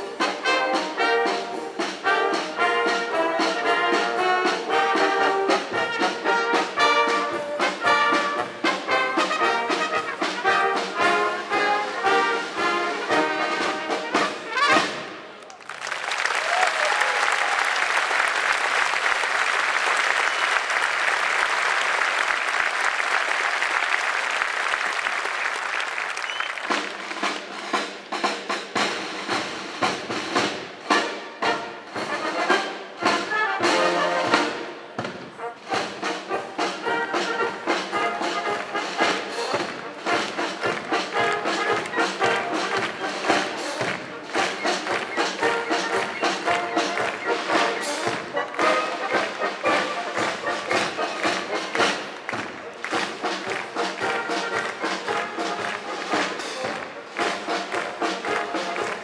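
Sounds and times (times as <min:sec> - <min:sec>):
wind band playing a march: 0:00.0 - 0:15.4, 0:16.4 - 0:59.0
audience applause: 0:14.5 - 0:27.7, 0:36.9 - 0:59.0.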